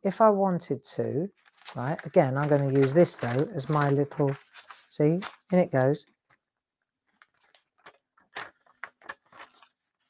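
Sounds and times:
paper crinkling and rustling: 1.3 - 10.0
soft crackles: 1.3 - 10.0.

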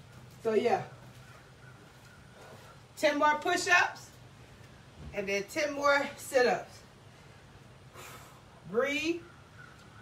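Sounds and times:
distant bird calls: 0.0 - 3.0, 7.2 - 10.0.

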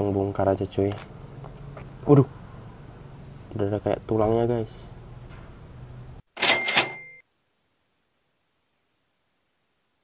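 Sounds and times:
cash register ka-ching: 6.4 - 7.2.

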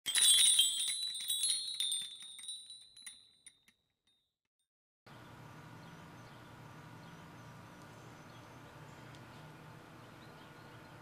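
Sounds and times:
shimmering chime jingle: 0.0 - 3.4.

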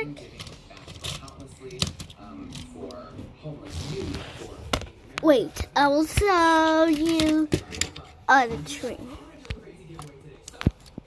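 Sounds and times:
toys clicking and knocking: 0.2 - 3.0, 5.2 - 8.9.

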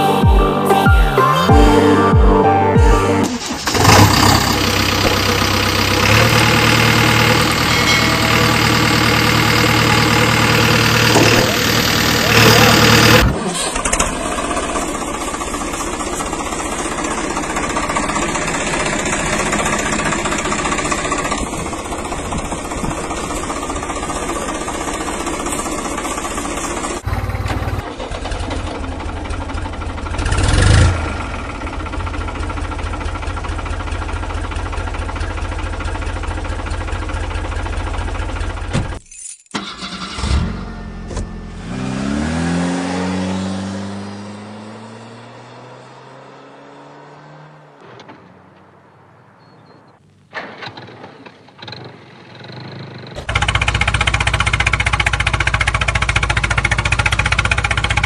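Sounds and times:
engine running steadily: 1.7 - 39.0, 51.2 - 58.0
engine revving up: 3.2 - 15.0, 30.2 - 31.6, 39.6 - 47.8.

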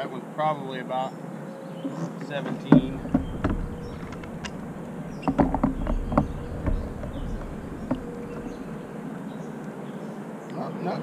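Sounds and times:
knocks and clicks on plastic deck: 2.8 - 8.8.

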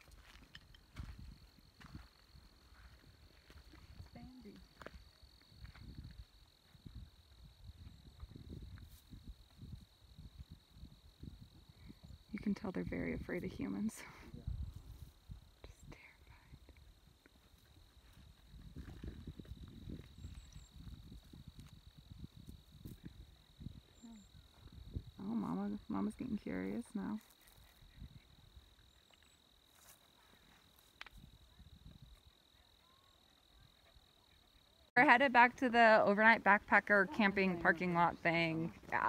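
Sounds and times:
high-pitched insect trill: 14.4 - 34.9
faint whispering: 15.6 - 16.8.

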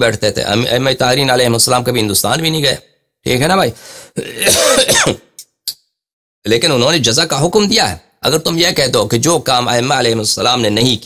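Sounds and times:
man clearing his throat: 4.2 - 5.4.

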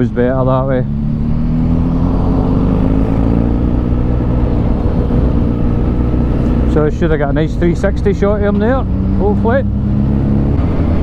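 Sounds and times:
motorcycle engine cruising: 0.0 - 11.0
wind rumble on microphone: 1.1 - 11.0.

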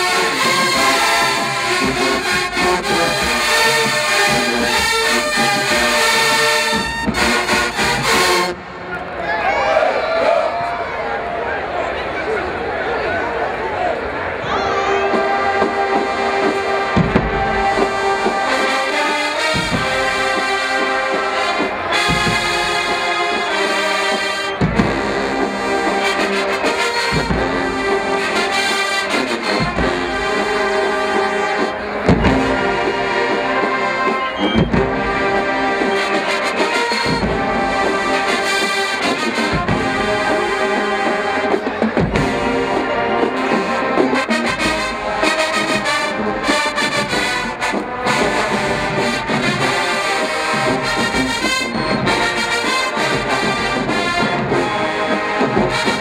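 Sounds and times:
marching band brass: 0.0 - 56.0
heavy low drum hits: 17.0 - 18.3, 22.0 - 23.0.

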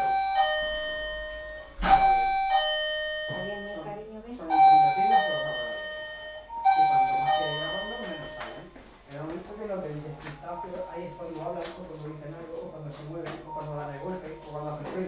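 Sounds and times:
bell-like chime tones: 4.7 - 8.7.

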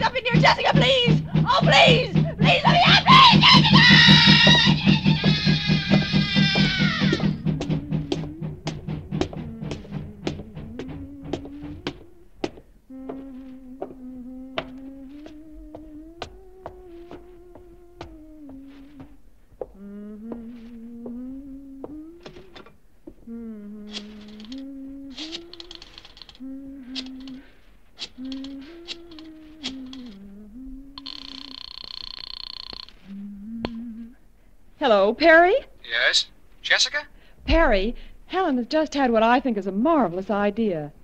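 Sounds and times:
sharp knocks: 0.0 - 12.7
electric buzzer: 31.0 - 33.0.

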